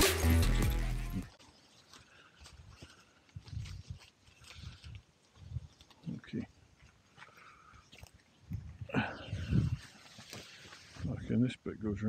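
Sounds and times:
background music: 0.0 - 1.3.

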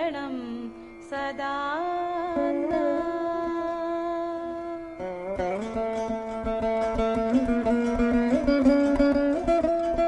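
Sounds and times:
woman singing a long note: 0.0 - 5.0.

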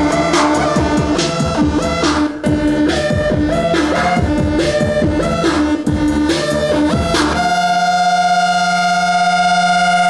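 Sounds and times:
synthesizer drone: 0.0 - 10.0.

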